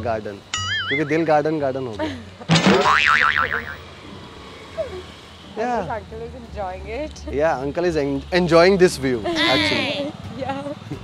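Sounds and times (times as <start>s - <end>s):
comic boing sound effect: 0.6s - 1.3s, 2.5s - 3.8s.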